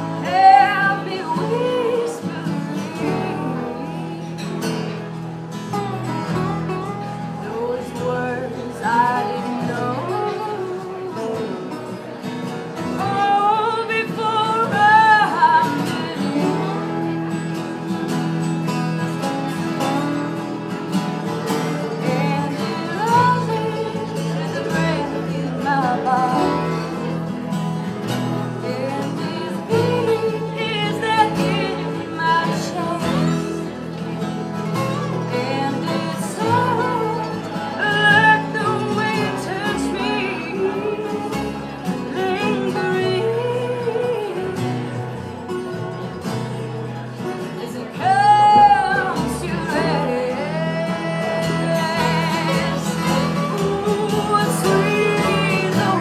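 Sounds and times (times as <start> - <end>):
acoustic string band playing: 0.0 - 56.0.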